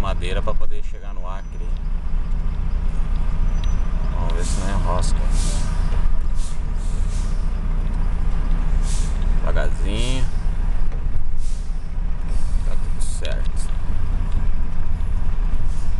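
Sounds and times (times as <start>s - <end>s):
heavy vehicle engine drone: 0.0s - 15.9s
short hisses: 4.4s - 7.5s, 8.8s - 9.2s, 11.4s - 12.8s.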